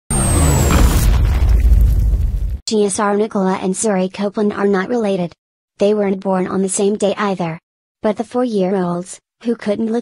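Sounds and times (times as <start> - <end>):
deep cinematic boom: 0.1 - 2.6
heavy low rumble: 0.1 - 2.6.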